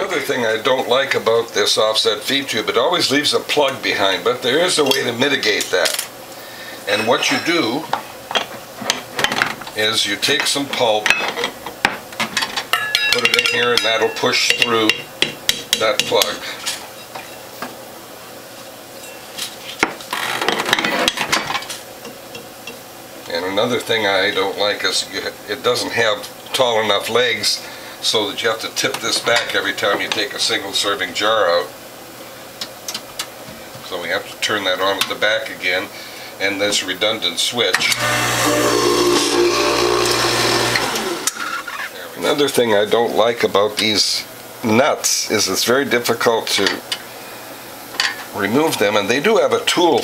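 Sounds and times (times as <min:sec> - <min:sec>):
glass jar clink: 0:12.8 - 0:14.6
electric motor humming: 0:37.8 - 0:41.5.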